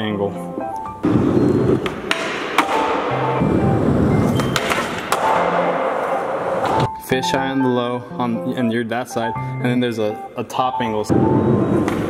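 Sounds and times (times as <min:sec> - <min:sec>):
skateboard clacks: 0:04.3 - 0:05.6.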